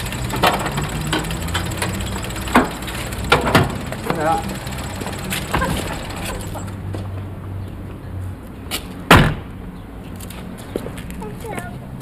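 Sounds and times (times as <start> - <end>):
low outdoor rumble: 0.0 - 7.4
footsteps on pavement: 6.6 - 9.1, 9.7 - 12.0.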